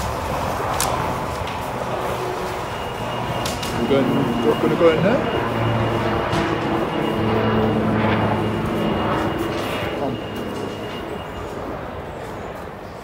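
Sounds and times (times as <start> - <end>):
low mechanical hum: 0.0 - 13.0
thin high whine: 0.0 - 13.0.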